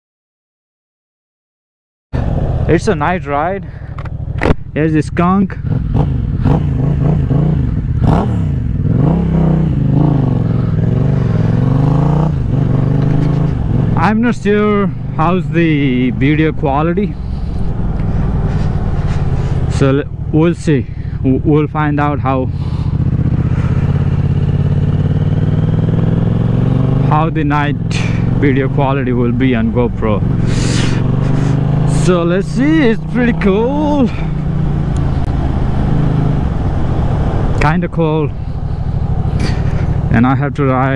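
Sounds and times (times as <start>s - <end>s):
motorcycle engine running: 2.2s - 40.9s
wind rushing over microphone: 34.3s - 37.8s.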